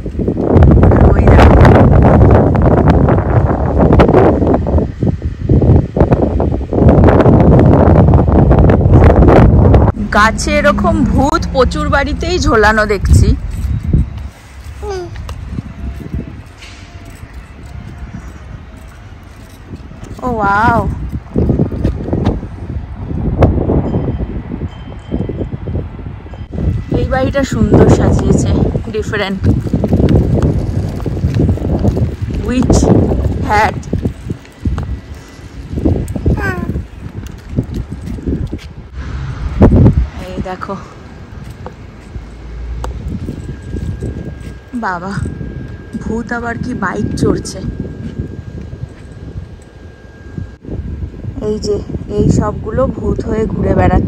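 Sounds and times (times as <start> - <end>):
wind buffeting microphone: 0.0 - 54.0
faint steady high tone: 43.1 - 52.8.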